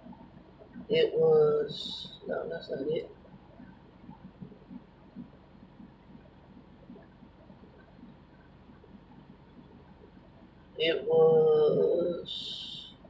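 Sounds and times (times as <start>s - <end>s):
faint low hum: 0.0s - 13.0s
soft irregular sounds: 0.0s - 13.0s.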